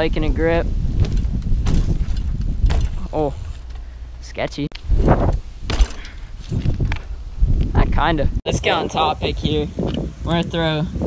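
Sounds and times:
wind on microphone: 0.0 - 3.8, 4.8 - 11.0
bike knocks and rattles: 0.0 - 4.0, 5.0 - 7.7
bike rolling on asphalt: 0.7 - 4.1.

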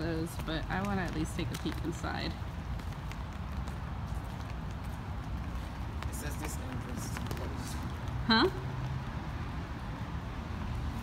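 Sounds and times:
footsteps on stone steps: 0.0 - 9.3.

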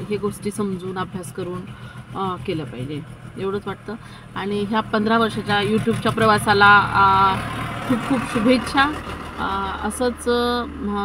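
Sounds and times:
low rumble of vehicle noise: 0.0 - 11.0
woman talking: 0.0 - 11.0.

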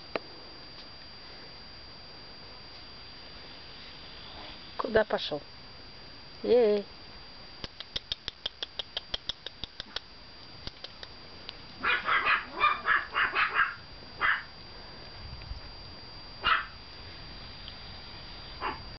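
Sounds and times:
puppies yapping: 11.8 - 14.5, 16.4 - 16.7.

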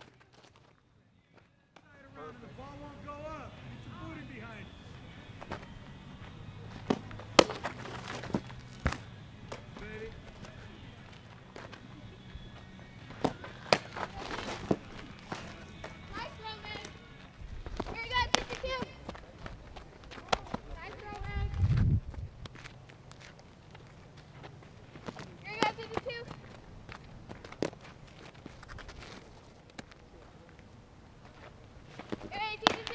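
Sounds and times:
ball popping into gloves: 6.7 - 9.7, 13.1 - 15.9.

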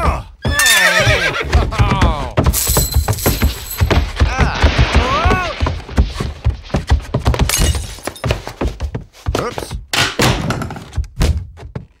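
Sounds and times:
thuds and knocks: 1.5 - 12.0.

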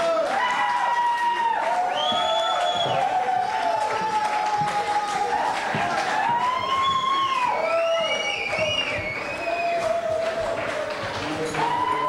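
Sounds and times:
concert crowd noise: 0.0 - 12.0.

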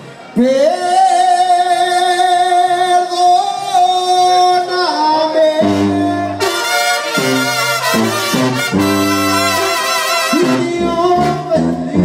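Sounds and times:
man singing long note: 0.5 - 6.5, 10.3 - 12.0
brass band chords: 5.5 - 12.0.

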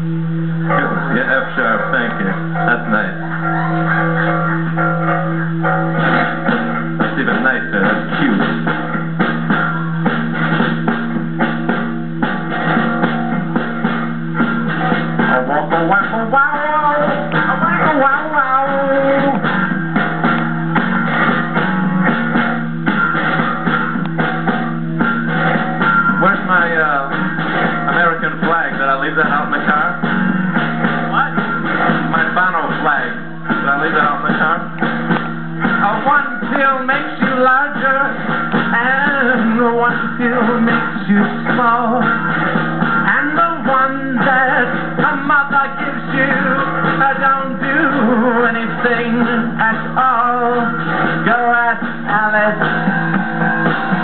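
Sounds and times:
band playing: 0.0 - 54.0
guitar strumming: 0.0 - 54.0.

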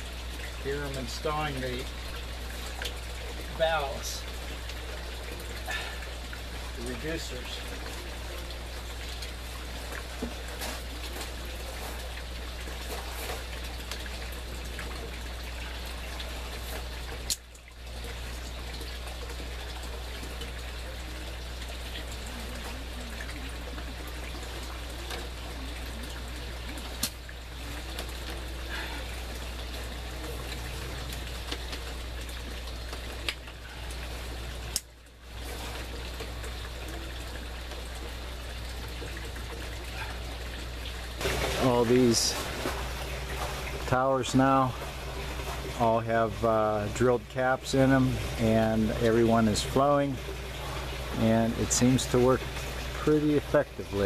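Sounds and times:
low steady hum: 0.0 - 54.0
water trickling through pipes: 0.0 - 54.0.

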